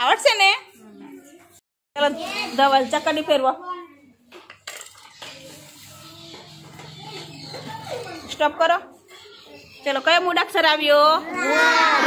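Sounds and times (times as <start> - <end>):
child's voice: 0.8 - 2.6, 3.6 - 4.2, 5.1 - 9.9, 11.2 - 12.0.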